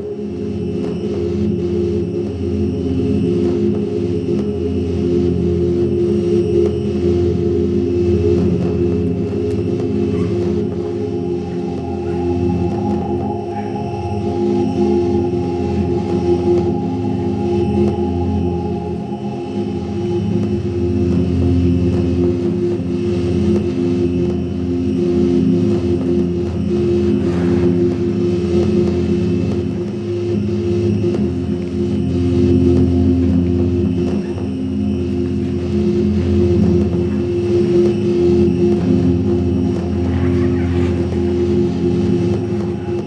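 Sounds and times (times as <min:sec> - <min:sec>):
low drone with held tones: 0:00.0 - 0:43.0.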